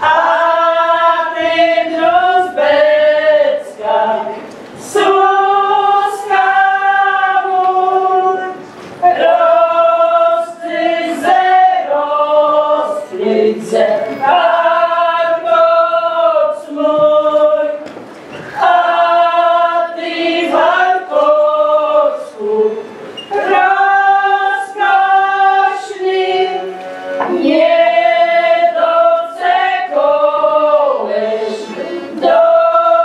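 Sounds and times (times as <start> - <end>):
women singing folk song: 0.0 - 33.0.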